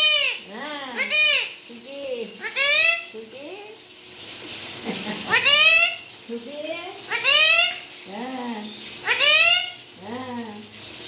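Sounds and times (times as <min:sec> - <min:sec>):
parakeet harsh calls: 0:00.0 - 0:01.7, 0:02.3 - 0:03.2, 0:05.1 - 0:06.2, 0:07.0 - 0:10.0.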